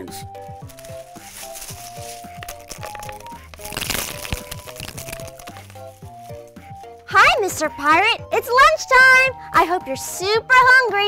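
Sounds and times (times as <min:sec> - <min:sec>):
light background music: 0:00.0 - 0:11.0
crunching crackling bite: 0:00.5 - 0:06.7.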